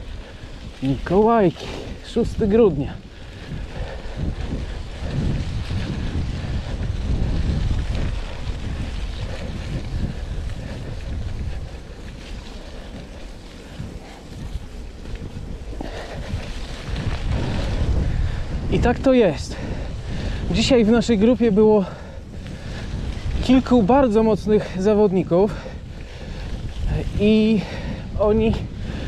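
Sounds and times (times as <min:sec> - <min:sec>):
bike rolling over dirt: 0:00.0 - 0:29.0
wind buffeting microphone: 0:00.0 - 0:29.0.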